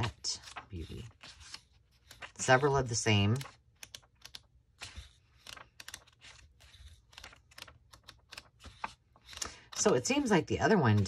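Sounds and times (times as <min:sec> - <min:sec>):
paper pages flicking and rustling: 0:00.0 - 0:11.0.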